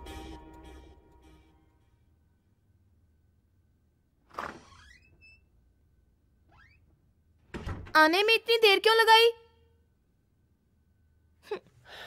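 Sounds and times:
door hinge squeaking: 4.3 - 5.5.

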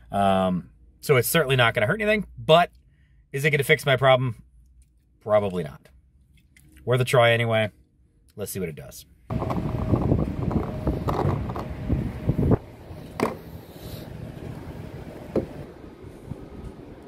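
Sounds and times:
steady outdoor hiss: 8.8 - 17.0
phone rustling and knocking: 13.1 - 13.5.

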